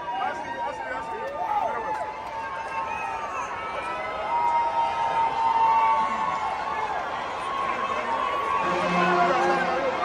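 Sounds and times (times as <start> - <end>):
crowd talking and shouting: 0.0 - 10.0.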